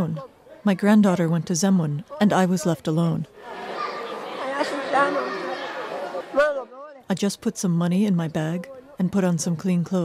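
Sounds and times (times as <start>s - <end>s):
murmur of many voices: 0.0s - 7.1s.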